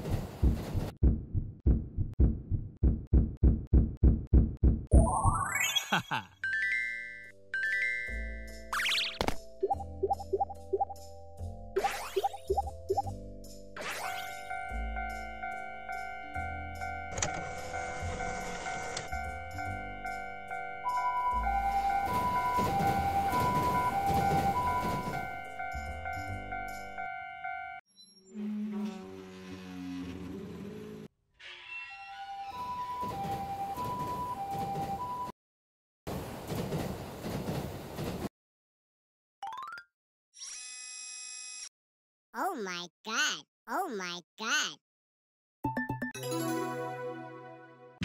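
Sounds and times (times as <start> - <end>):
dull low thumps: 0.4 - 4.9
two-tone ambulance siren: 14.3 - 27.8, 32.4 - 35.3.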